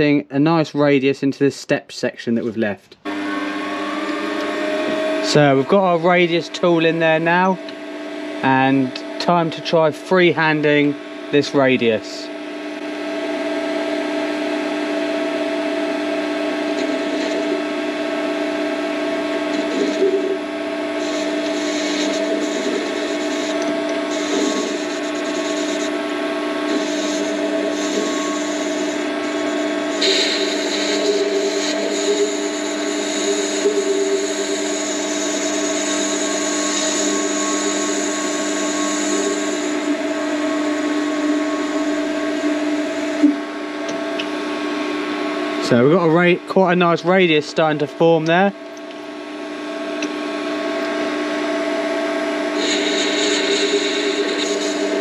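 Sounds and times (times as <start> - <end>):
lathe drive whining: 3.0 - 55.0
cutting tool scraping metal: 21.0 - 26.0, 26.6 - 40.0, 52.6 - 55.0.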